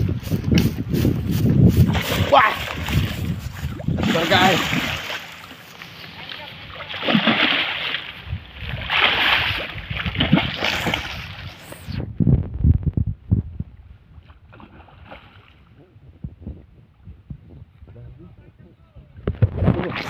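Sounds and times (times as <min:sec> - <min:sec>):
fish thrashing and splashing: 0:01.9 - 0:06.0, 0:06.7 - 0:11.9.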